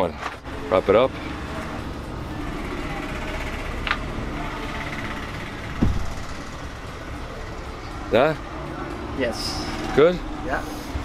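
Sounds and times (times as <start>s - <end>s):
roadside shop hubbub: 0.0s - 11.0s
low thump: 5.8s - 6.2s.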